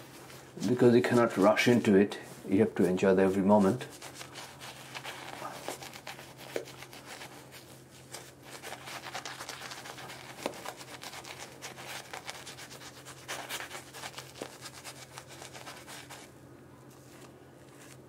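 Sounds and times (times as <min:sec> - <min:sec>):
wet scratchy brush strokes: 0:00.0 - 0:16.3.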